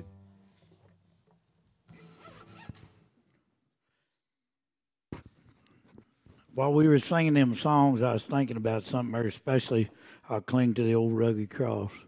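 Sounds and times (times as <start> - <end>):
people rustling and shuffling: 0.0 - 3.0.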